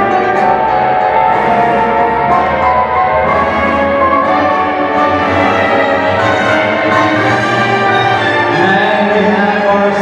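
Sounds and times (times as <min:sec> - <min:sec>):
orchestral tango over loudspeaker: 0:00.0 - 0:10.0.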